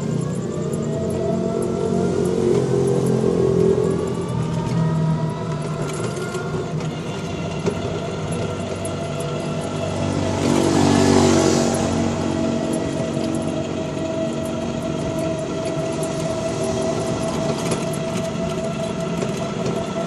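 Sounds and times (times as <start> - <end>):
body rattling: 0.0 - 20.0
electric motor whine: 0.0 - 20.0
road noise: 0.0 - 20.0.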